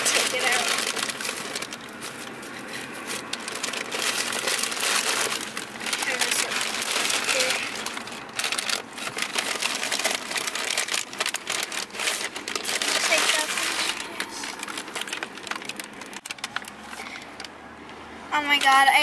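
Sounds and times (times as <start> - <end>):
paper bags rustling: 0.0 - 17.5.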